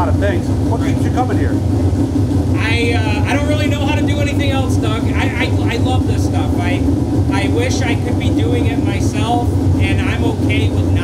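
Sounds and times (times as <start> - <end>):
man talking: 0.0 - 1.6, 2.6 - 11.0
steady low rumble: 0.0 - 11.0.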